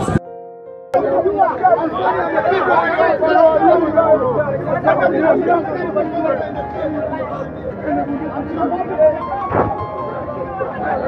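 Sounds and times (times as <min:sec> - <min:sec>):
men talking over one another: 0:01.0 - 0:11.0.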